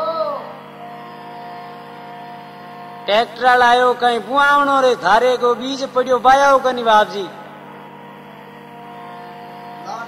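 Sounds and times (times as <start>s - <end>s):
instrument holding sustained chord: 0.0s - 10.0s.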